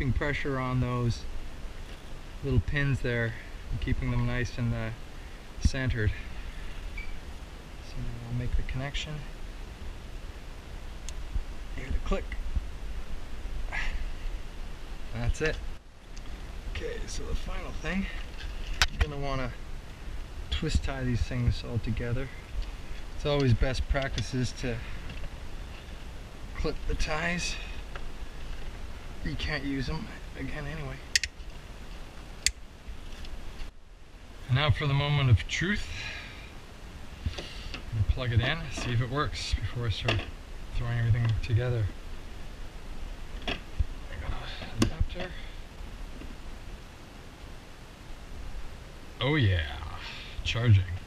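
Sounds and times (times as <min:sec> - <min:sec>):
man talking: 0:00.0 - 0:01.3, 0:02.4 - 0:05.0, 0:05.6 - 0:06.3, 0:07.8 - 0:09.4, 0:11.7 - 0:12.4, 0:15.1 - 0:15.6, 0:16.7 - 0:18.2, 0:18.9 - 0:19.6, 0:20.5 - 0:22.4, 0:23.2 - 0:25.0, 0:26.6 - 0:27.8, 0:29.2 - 0:31.1, 0:34.4 - 0:36.2, 0:37.9 - 0:42.0, 0:44.1 - 0:45.6, 0:49.2 - 0:51.0
low background noise: 0:00.0 - 0:51.0.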